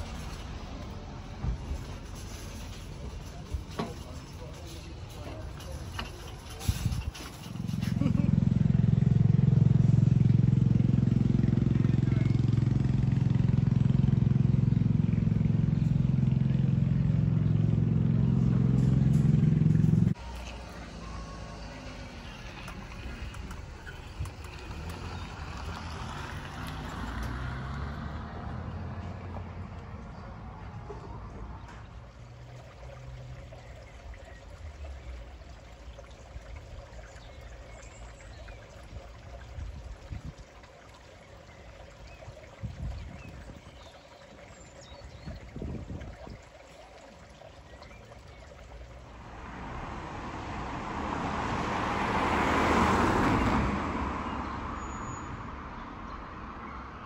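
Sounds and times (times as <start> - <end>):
street traffic noise: 0.0 - 57.0
loud low motor hum: 7.7 - 29.4.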